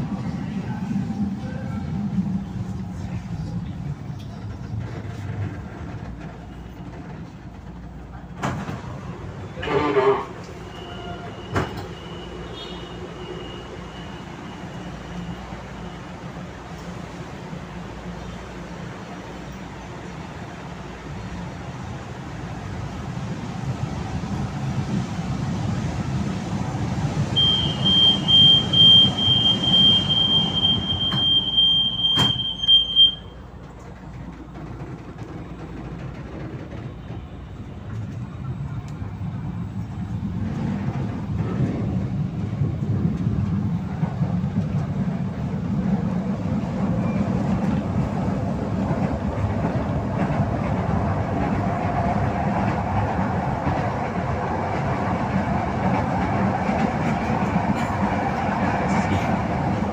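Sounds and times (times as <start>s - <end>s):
train wheel and motor noise: 0.0s - 59.9s
train doors shutting knock: 9.6s - 12.1s, 27.4s - 33.3s.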